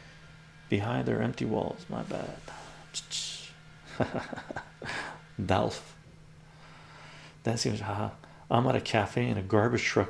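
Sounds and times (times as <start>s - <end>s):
man chuckling: 3.8s - 5.2s.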